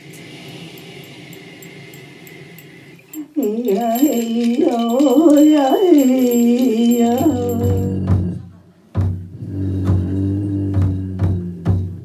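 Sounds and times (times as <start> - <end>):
stick rattle jingling: 1.0 - 8.1
man's low vocal drone: 3.4 - 8.4, 9.3 - 12.0.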